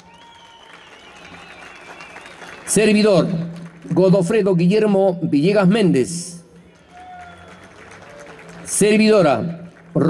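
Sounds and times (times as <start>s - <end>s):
audience clapping: 0.0s - 4.3s, 6.6s - 10.0s.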